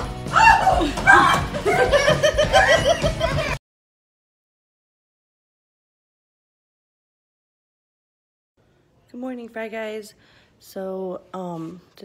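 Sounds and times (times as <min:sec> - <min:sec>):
person laughing high-pitched: 0:00.7 - 0:03.6.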